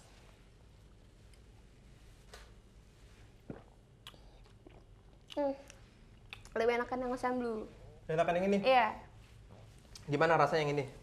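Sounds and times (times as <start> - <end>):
faint swallowing and mouth sounds: 0.3 - 6.6.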